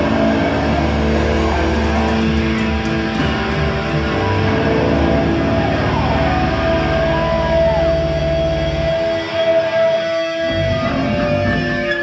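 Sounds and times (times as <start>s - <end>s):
low bass note: 0.0s - 8.9s
electric guitar sustained note: 0.0s - 12.0s.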